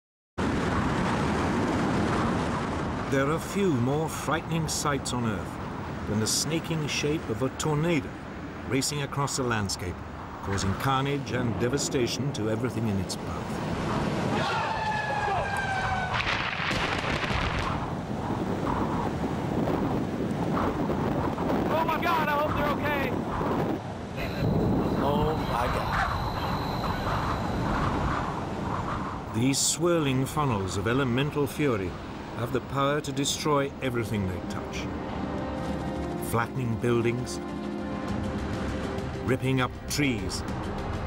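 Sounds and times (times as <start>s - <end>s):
tornado wind rushing: 0.4s - 7.4s, 8.0s - 39.3s.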